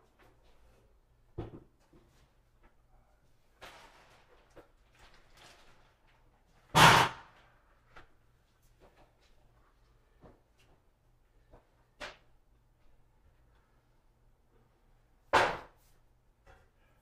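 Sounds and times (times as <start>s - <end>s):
soft rustling of materials: 0.0s - 6.7s, 7.4s - 15.0s.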